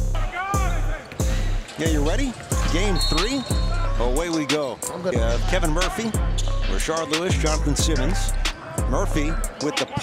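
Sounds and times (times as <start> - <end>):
music with booming bass beat: 5.2 - 9.3.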